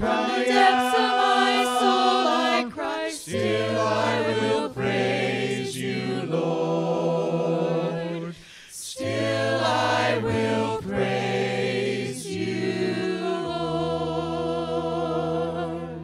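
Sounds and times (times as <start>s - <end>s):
congregation singing a cappella: 0.0s - 16.0s.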